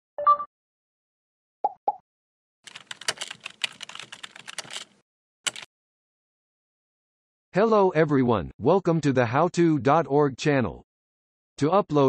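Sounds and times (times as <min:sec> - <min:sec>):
typing on computer keyboard: 0:02.7 - 0:05.7.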